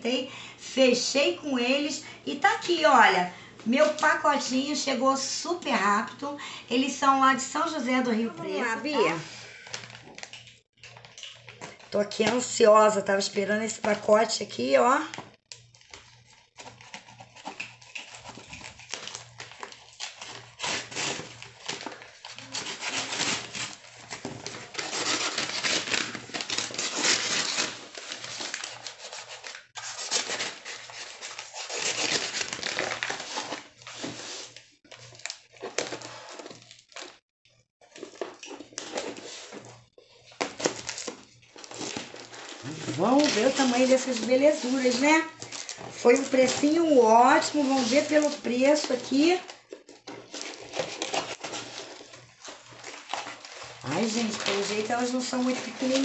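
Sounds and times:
paper and cardboard tearing: 0:15.8 - 0:37.2, 0:40.4 - 0:56.0.

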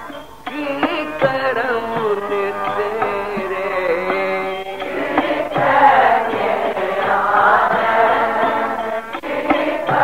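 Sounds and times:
musical accompaniment: 0:00.0 - 0:10.0
voices chanting a hymn: 0:00.0 - 0:10.0.

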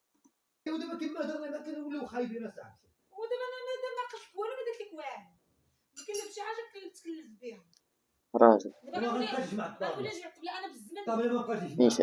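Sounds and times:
woman speaking quickly: 0:08.9 - 0:11.1.

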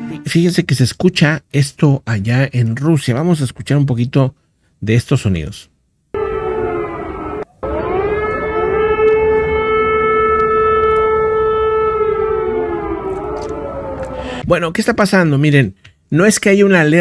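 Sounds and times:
air-raid siren wailing: 0:06.2 - 0:14.4.

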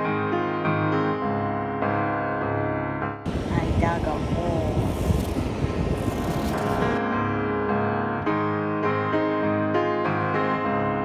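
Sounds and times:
wind buffeting microphone: 0:03.2 - 0:07.0.

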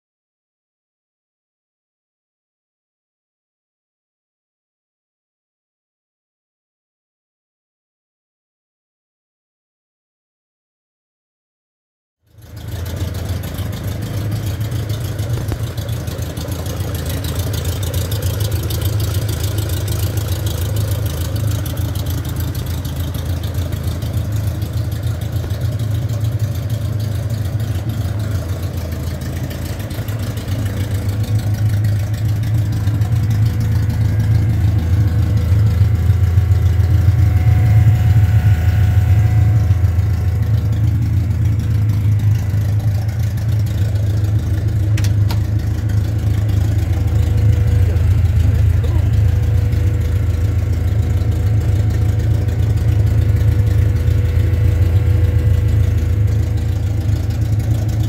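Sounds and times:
race car engine idling: 0:12.3 - 0:58.0.

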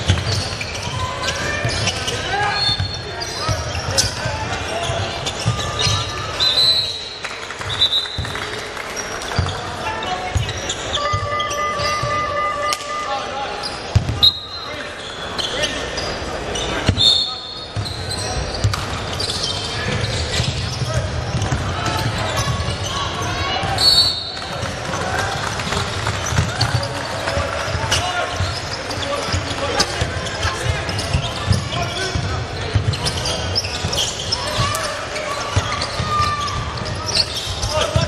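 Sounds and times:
sneakers squeaking: 0:00.0 - 0:38.0
people calling out: 0:09.9 - 0:13.7.

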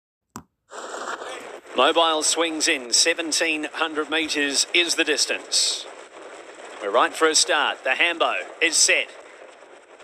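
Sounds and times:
broadcast background noise: 0:00.8 - 0:10.0
man commentating: 0:01.2 - 0:05.9, 0:06.8 - 0:09.3.

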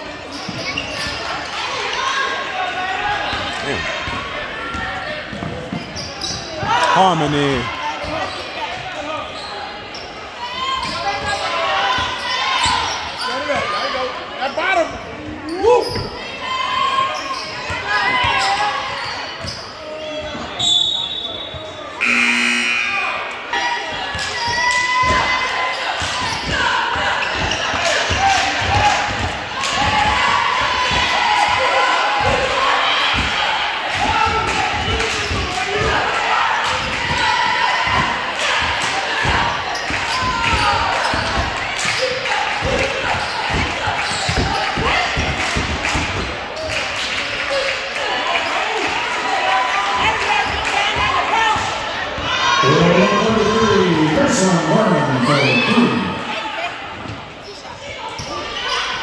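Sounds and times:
shouts and chatter: 0:00.0 - 0:59.0
referee's whistle: 0:20.6 - 0:23.2
short buzzer: 0:22.0 - 0:23.2.

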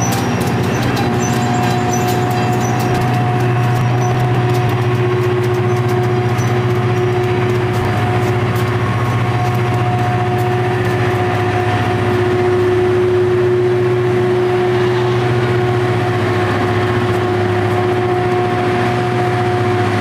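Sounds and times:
diesel engines rumbling: 0:00.0 - 0:20.0
grinding stones whining on rail: 0:00.0 - 0:20.0.

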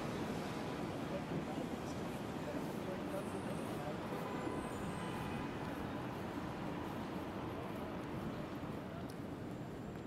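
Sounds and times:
hum of traffic: 0:00.0 - 0:10.0
faint indistinct voices: 0:00.9 - 0:10.0.

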